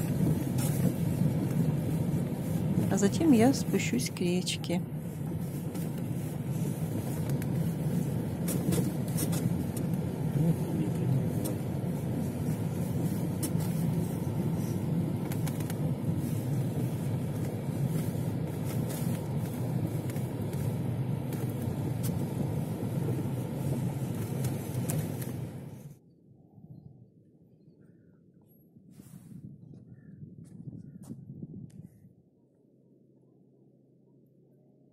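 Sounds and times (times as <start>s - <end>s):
car engine and tyres rumbling: 0.0s - 26.6s.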